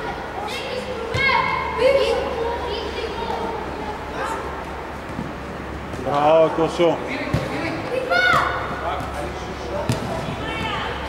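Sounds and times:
faint echoing voices: 0.0s - 11.0s.

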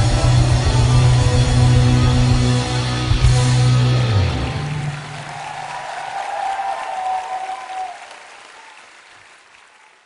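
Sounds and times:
audience applauding: 4.4s - 10.0s.

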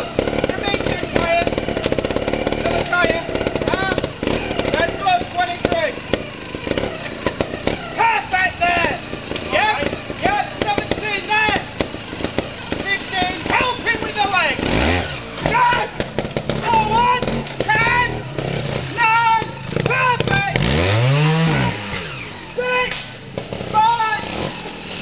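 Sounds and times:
people talking: 0.0s - 1.7s, 2.6s - 6.0s, 6.9s - 11.7s, 12.5s - 16.0s, 16.6s - 18.3s, 18.9s - 21.8s, 22.5s - 23.1s, 23.7s - 24.5s
motorcycle engine revving: 0.0s - 25.0s.

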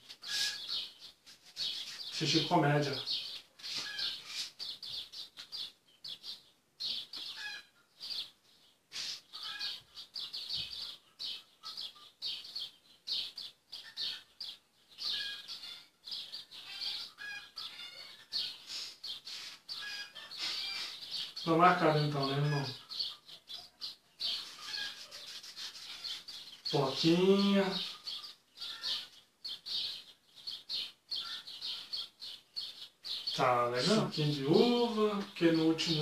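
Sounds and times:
small birds chirping: 0.0s - 36.0s.

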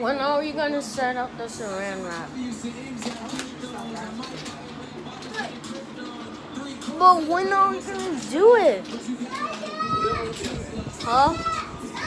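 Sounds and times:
child talking: 6.9s - 12.0s.

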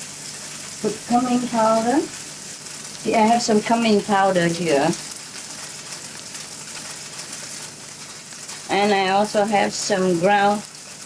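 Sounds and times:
tofu sizzling in hot oil: 0.0s - 11.0s.

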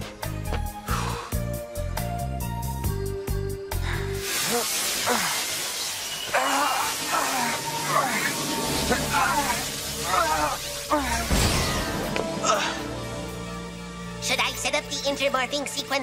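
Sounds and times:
background music with a beat: 0.0s - 3.6s
steady hiss: 4.0s - 11.0s.

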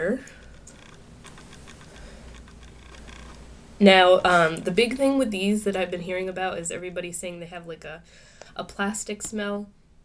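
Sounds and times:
low room hum: 0.0s - 10.0s
small plastic clicks: 0.3s - 3.4s.

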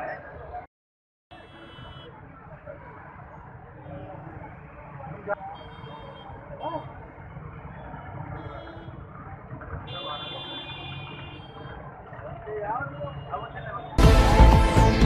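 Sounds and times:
crowd talking: 0.0s - 0.7s, 1.3s - 15.0s
traffic: 0.0s - 0.7s, 1.3s - 15.0s.

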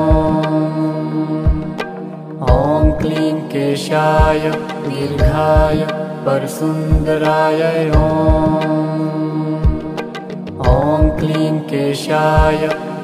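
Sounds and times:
soft low drum beats: 0.0s - 0.4s, 1.5s - 1.8s, 2.5s - 3.1s, 4.2s - 4.5s, 5.2s - 5.8s, 6.9s - 7.2s, 7.9s - 8.6s, 9.6s - 9.9s, 10.6s - 11.3s
person singing long notes: 0.0s - 13.0s
steady drone: 0.0s - 13.0s.

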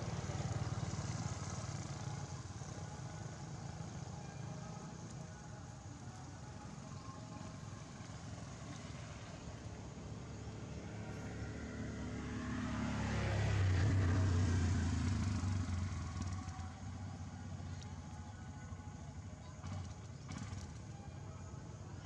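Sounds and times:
motor vehicle passing by: 0.0s - 22.0s.

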